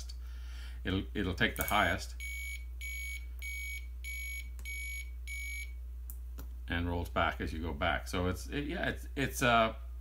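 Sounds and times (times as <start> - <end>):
steady low hum: 0.0 - 10.0
piezo buzzer short high beeps: 2.2 - 5.7.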